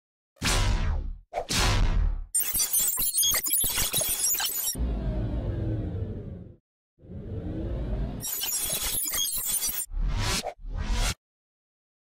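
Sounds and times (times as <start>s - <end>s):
low rumble with falling sweep: 4.8s - 8.2s
rising sweep: 4.8s - 8.2s.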